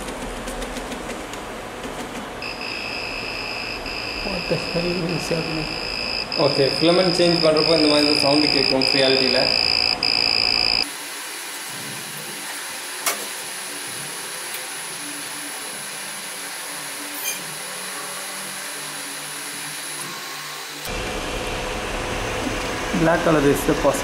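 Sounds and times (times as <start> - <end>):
printer fans humming: 0.0 - 24.0
high alert beep: 2.4 - 10.9.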